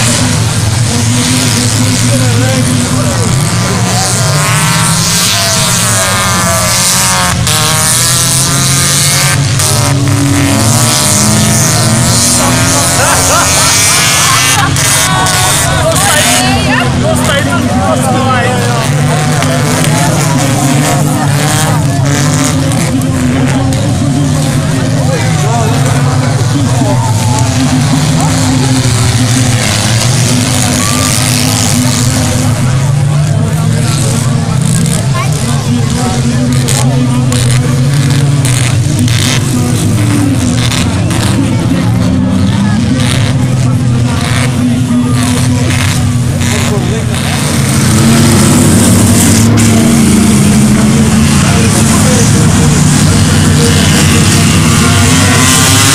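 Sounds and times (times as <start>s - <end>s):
race car engines revving: 0.0s - 55.9s
spectators' voices: 0.0s - 55.9s.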